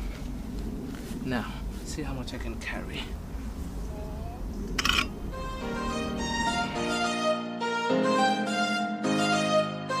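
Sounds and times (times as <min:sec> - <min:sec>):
wind rumble on microphone: 0:00.0 - 0:06.6
violin-led music: 0:05.3 - 0:10.0.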